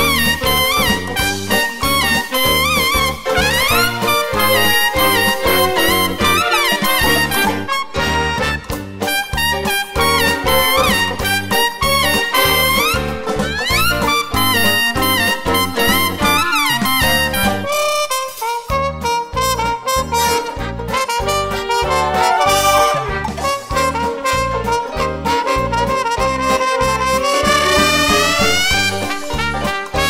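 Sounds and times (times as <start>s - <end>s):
big band brass ensemble: 0.0s - 30.0s
high lead trumpet: 0.0s - 30.0s.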